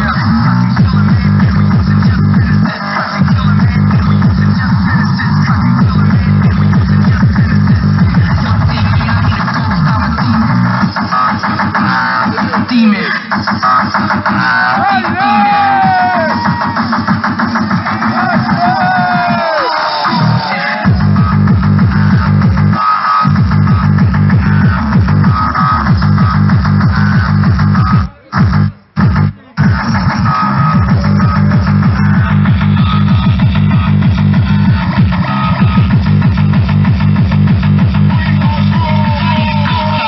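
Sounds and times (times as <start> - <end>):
distorted kick drums: 0.0 - 40.0
loud techno music: 0.0 - 40.0
pitch-shifted vocal sample: 11.8 - 13.5, 38.0 - 40.0.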